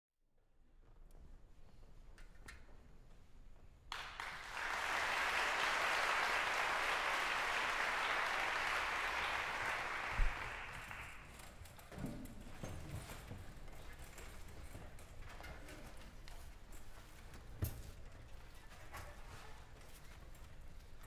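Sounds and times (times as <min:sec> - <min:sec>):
audience applauding: 0:03.9 - 0:11.5.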